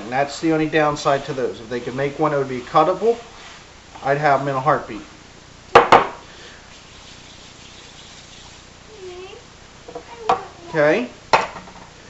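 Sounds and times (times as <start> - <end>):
sharp knock: 5.8 - 6.2.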